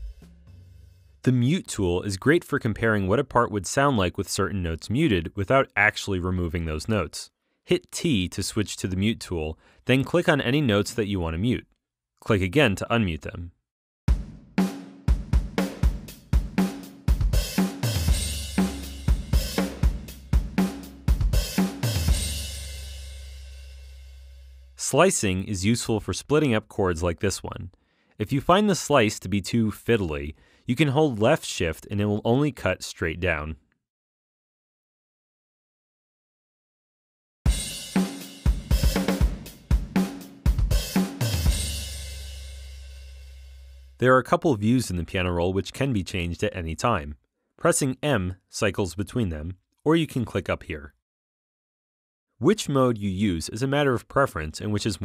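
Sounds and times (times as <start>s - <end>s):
programmed drum beat: 0.0s - 1.2s, 14.1s - 23.7s, 37.5s - 43.8s.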